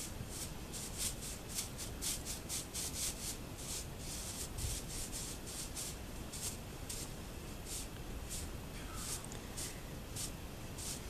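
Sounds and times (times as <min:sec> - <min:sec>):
broom brushing strokes: 0:00.0 - 0:11.0.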